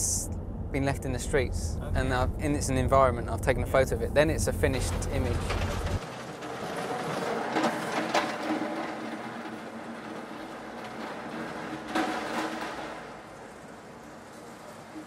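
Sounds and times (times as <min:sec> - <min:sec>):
faint hum: 0:00.0 - 0:06.0
city noise: 0:00.0 - 0:15.0.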